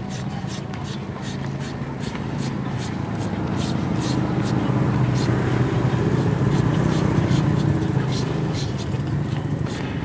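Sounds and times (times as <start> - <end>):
shredder scraping papaya: 0.0 - 9.0
vehicle engine humming: 0.0 - 10.0.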